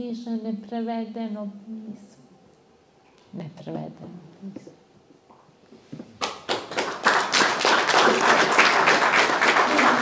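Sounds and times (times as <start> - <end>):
audience applause: 6.3 - 10.0.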